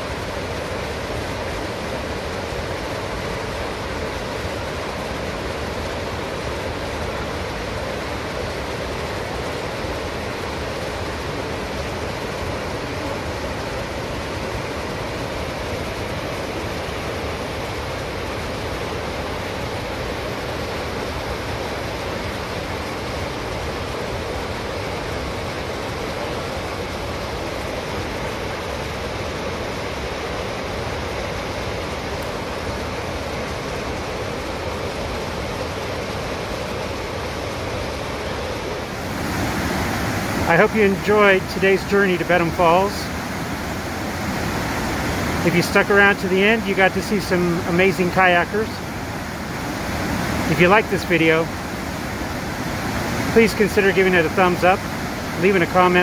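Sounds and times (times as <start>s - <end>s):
whitewater rapids rushing: 35.2s - 56.0s.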